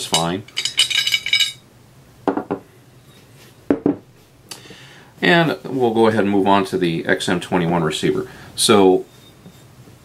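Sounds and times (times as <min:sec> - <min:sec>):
metal parts clinking: 0:00.0 - 0:01.6
metal parts knocking on workbench: 0:00.1 - 0:01.6.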